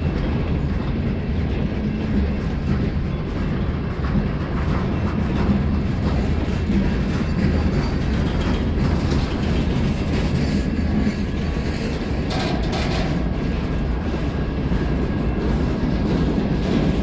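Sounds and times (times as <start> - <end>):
freight cars rolling on rails: 0.0 - 17.0.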